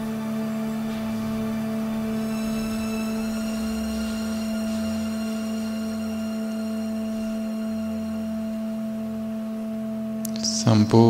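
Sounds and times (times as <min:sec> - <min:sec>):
meditation drone: 0:00.0 - 0:11.0.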